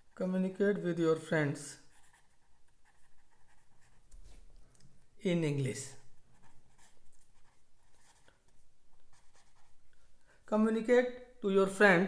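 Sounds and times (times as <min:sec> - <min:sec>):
pen writing on paper: 0:01.9 - 0:04.1, 0:06.3 - 0:08.3, 0:09.1 - 0:09.7.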